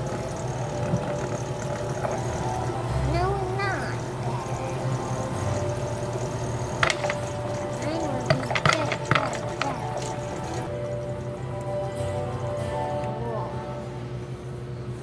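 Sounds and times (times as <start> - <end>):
background music with held tones: 0.0 - 15.0
wooden blocks clacking: 4.2 - 10.7.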